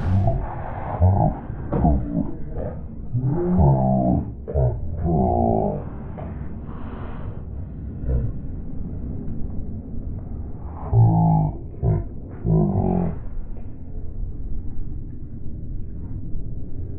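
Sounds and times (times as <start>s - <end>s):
steady low rumble: 0.0s - 16.9s.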